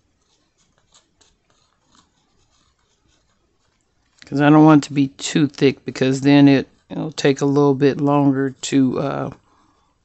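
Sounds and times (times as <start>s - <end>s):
plastic nozzle scratching metal: 0.0s - 4.3s.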